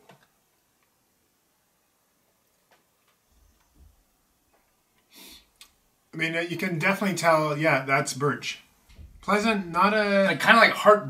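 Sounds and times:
brief hiss: 5.1s - 5.5s
faint low thuds: 8.8s - 9.8s.

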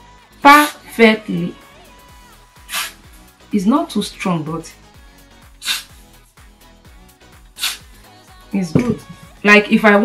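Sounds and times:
aerosol spray hiss: 2.7s - 3.0s, 5.6s - 6.0s, 7.6s - 7.9s.

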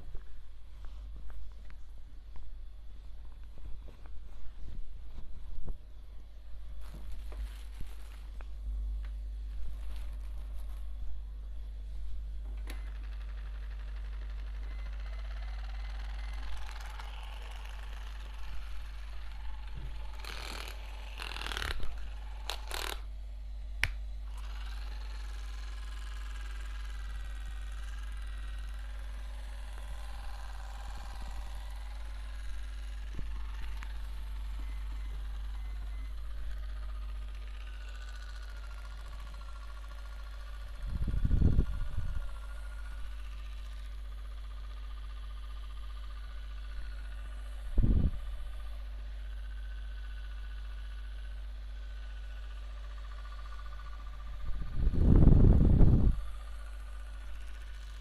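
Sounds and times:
electric face device whining: 0.0s - 58.0s
steady low hum: 0.0s - 58.0s
rustling handling noises: 6.7s - 8.6s.

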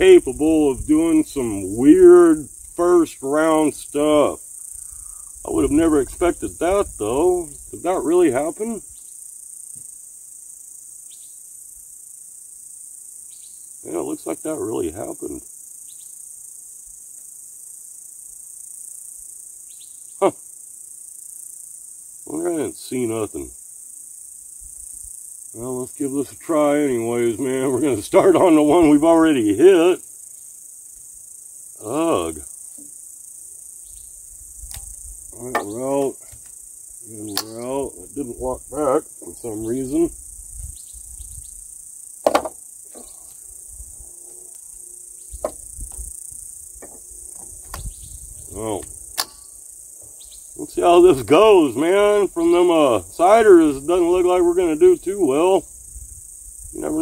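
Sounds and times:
insects droning: 0.0s - 57.0s.

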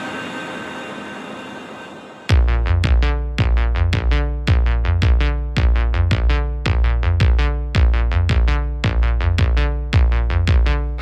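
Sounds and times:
synthesizer chord drone: 0.0s - 5.5s.

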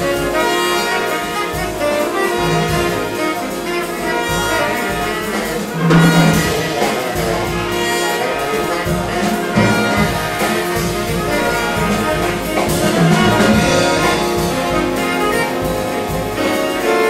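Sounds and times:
big band jazz: 0.0s - 17.0s.

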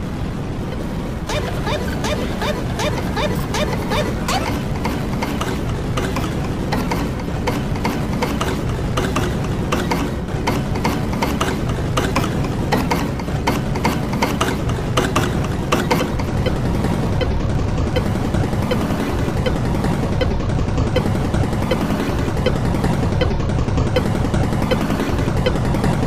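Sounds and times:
steady low rumble: 0.0s - 26.0s
rapid irregular clicks: 1.3s - 26.0s.

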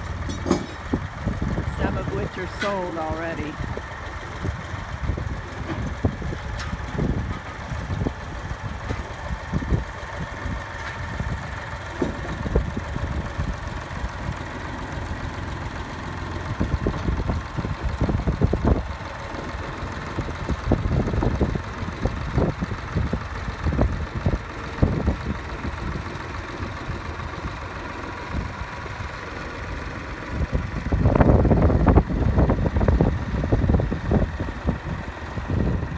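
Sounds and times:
forklift engine running: 0.0s - 35.9s.

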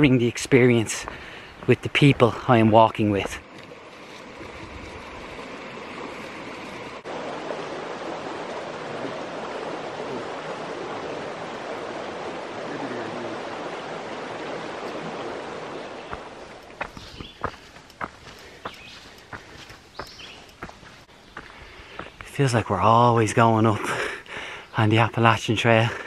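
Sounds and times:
creek water flowing: 0.0s - 26.0s.

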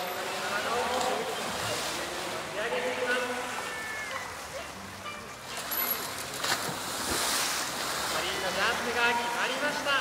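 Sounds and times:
churning falling water: 0.0s - 10.0s
orca splashing into pool: 5.4s - 8.8s.

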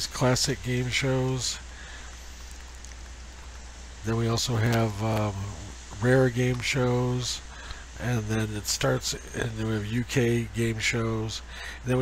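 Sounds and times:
low constant hum: 0.0s - 12.0s
microphone hiss: 0.0s - 12.0s.

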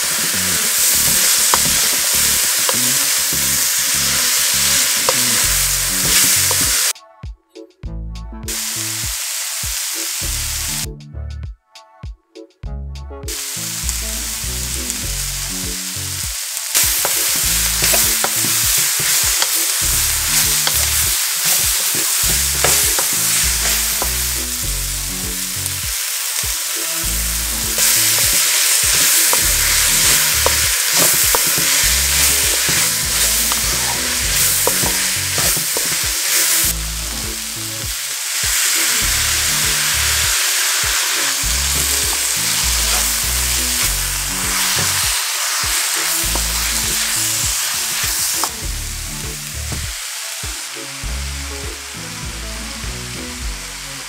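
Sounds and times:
vegetables sizzling in a pan: 0.0s - 6.9s, 8.6s - 10.8s, 13.4s - 52.2s.

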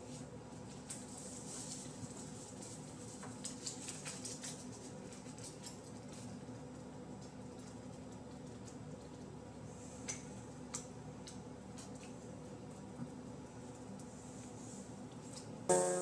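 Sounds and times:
faint steady hum: 0.0s - 16.0s
foil tape crinkling and scratching: 0.6s - 6.6s.

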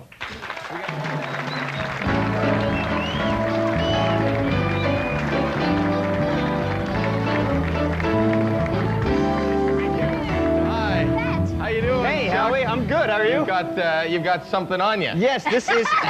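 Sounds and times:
band playing walk-on music: 1.5s - 15.1s.

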